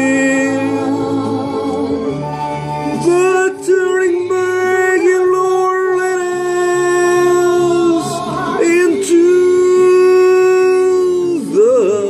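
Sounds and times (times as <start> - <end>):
man singing a held note: 0.0 - 0.9, 2.9 - 12.0.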